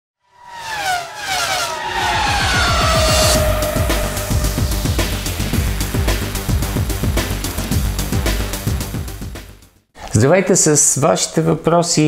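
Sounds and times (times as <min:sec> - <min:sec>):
race car engine passing by: 0:00.2 - 0:06.5.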